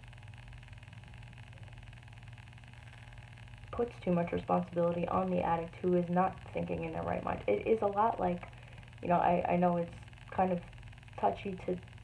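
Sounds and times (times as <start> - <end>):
faint low hum with hiss: 0.0 - 12.0.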